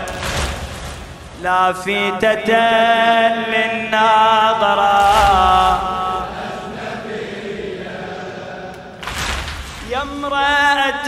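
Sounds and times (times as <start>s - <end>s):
crowd beating chests: 0.0s - 1.8s, 4.9s - 10.7s.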